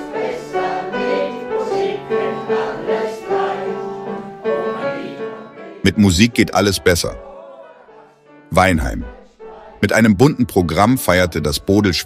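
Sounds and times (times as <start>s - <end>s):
elderly choir singing: 0.0s - 10.1s
upright piano: 0.0s - 12.0s.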